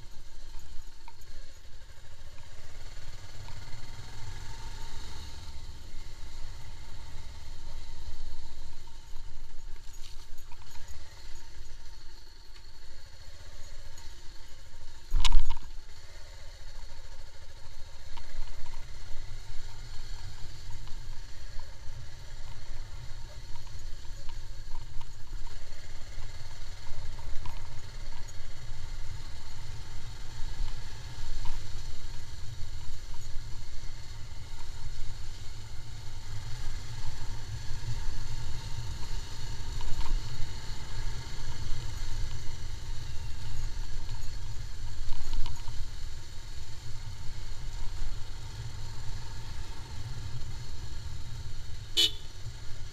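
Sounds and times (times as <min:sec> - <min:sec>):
motorcycle engine at low speed: 0:00.0 - 0:52.9
small clicks and rattles: 0:06.3 - 0:16.0, 0:16.7 - 0:51.5.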